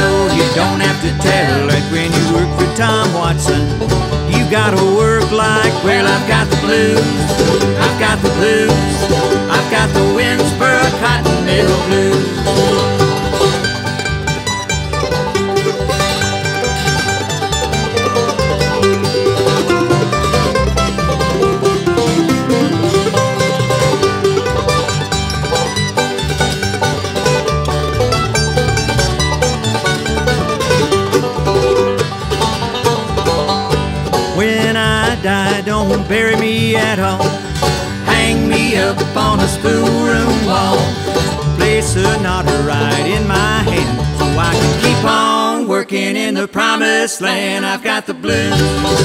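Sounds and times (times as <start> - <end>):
mandolin: 0.0 - 46.3, 47.4 - 49.0
acoustic guitar: 0.0 - 49.0
banjo: 0.0 - 49.0
upright bass: 0.0 - 49.0.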